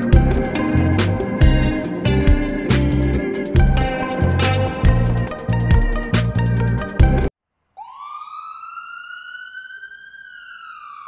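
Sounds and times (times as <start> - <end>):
music: 0.0 - 7.3
siren-like rising and falling tone: 7.8 - 11.0.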